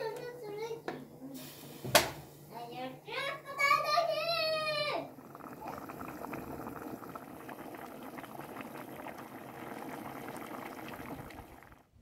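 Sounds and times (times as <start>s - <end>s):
water boiling in a pot: 3.8s - 12.0s.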